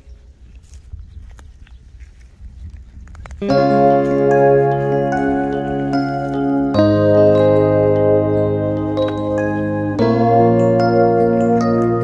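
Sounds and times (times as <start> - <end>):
dry grass and soil rustling: 0.0 - 12.0.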